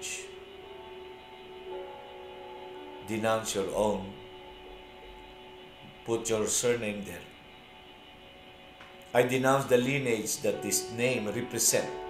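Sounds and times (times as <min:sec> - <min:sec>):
background hiss: 0:00.0 - 0:12.0
faint steady hum: 0:00.0 - 0:12.0.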